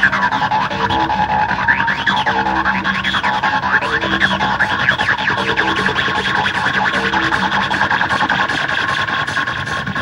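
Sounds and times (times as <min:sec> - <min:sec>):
distorted techno music: 0:00.0 - 0:10.0.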